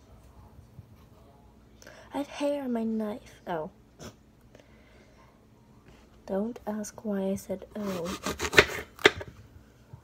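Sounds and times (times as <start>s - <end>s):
knife cutting apple: 7.8s - 9.3s.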